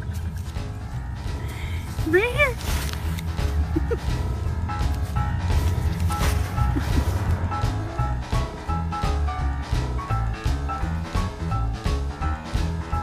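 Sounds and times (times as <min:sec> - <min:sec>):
music with beat and heavy bass: 0:00.0 - 0:13.0.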